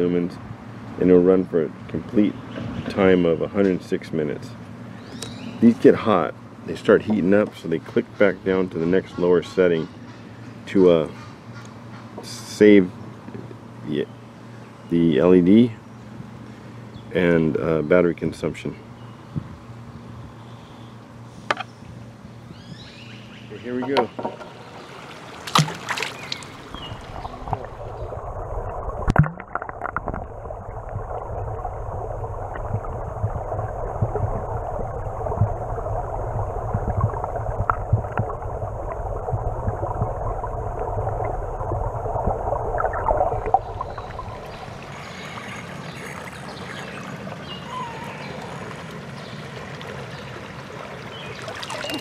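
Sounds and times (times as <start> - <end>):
water splashing: 23.8 - 52.0
water trickling and dripping: 23.9 - 52.0
muffled underwater noise: 26.2 - 30.6.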